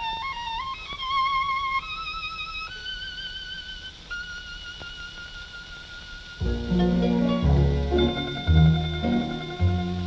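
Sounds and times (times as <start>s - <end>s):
solo violin with vibrato: 0.0s - 10.0s.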